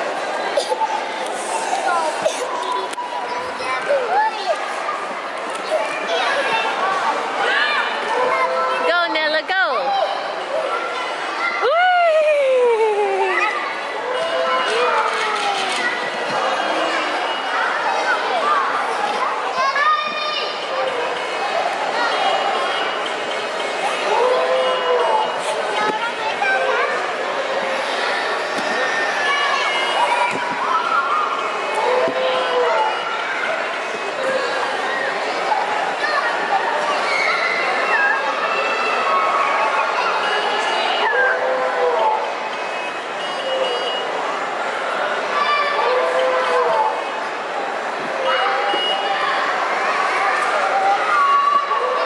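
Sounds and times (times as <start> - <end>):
children and adults chattering: 0.0 - 52.0.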